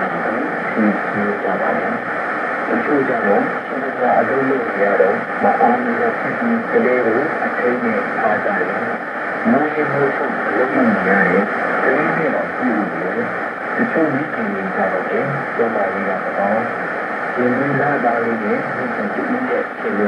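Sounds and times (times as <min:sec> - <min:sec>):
muffled radio voice speaking: 0:00.0 - 0:02.0, 0:02.7 - 0:20.0
static hiss: 0:00.0 - 0:20.0.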